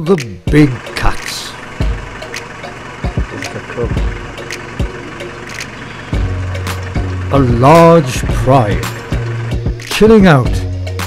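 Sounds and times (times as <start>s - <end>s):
vehicle engine idling: 0.4s - 11.0s
deep steady hum: 0.6s - 11.0s.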